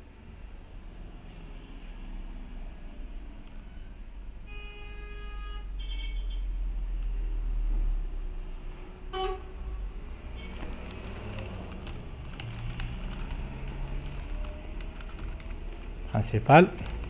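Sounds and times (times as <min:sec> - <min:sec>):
computer keyboard typing: 0:07.7 - 0:17.0.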